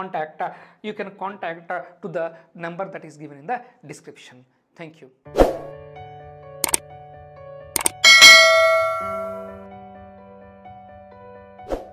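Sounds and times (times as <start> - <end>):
soft background music: 5.3 - 11.9
sharp clicks: 7.8 - 8.0
bright bell ding: 7.8 - 9.6.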